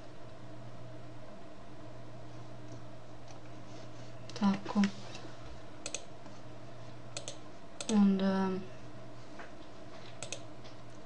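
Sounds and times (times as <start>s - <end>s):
low electrical hum: 0.0s - 11.0s
computer input clicks: 5.8s - 6.1s, 7.2s - 8.0s, 10.2s - 10.5s.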